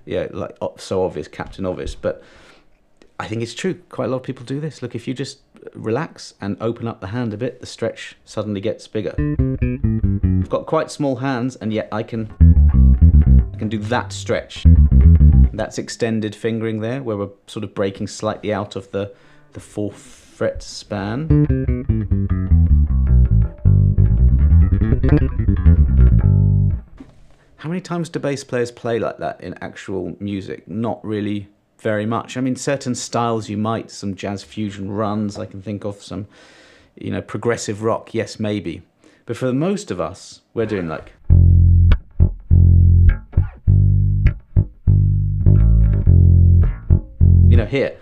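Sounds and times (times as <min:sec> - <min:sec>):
electric bass guitar fast run: 0:09.2 - 0:10.5, 0:12.3 - 0:15.6, 0:21.2 - 0:26.9.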